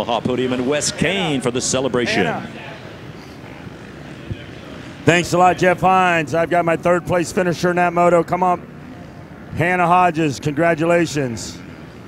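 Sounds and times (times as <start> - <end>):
dirt bike engines droning: 0.0 - 12.0.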